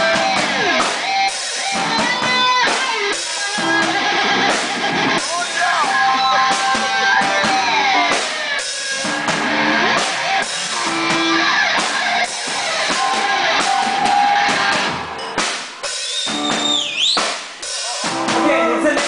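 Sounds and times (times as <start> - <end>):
electric guitar notes bending: 0.0 - 15.4
drum kit: 0.0 - 19.0.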